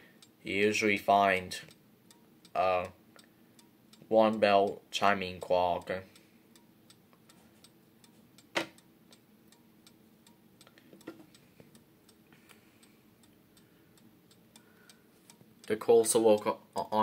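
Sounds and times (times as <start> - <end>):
mantel clock ticking: 0.0 - 17.0.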